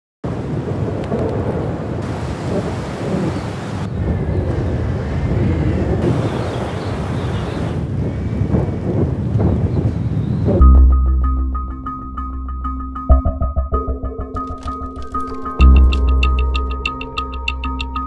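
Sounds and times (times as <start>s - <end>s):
blizzard wind rushing: 0.2s - 10.6s.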